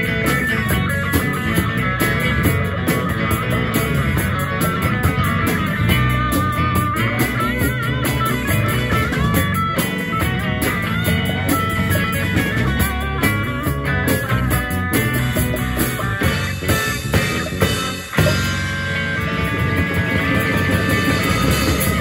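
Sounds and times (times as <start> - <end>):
bass guitar: 0.0 - 22.0
drum kit: 0.0 - 22.0
electric guitars: 0.0 - 22.0
lead guitar bending in pitch: 0.0 - 22.0.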